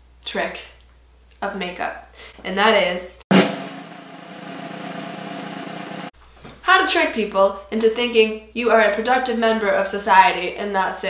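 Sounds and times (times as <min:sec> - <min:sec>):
snare drumroll: 0:03.3 - 0:06.1.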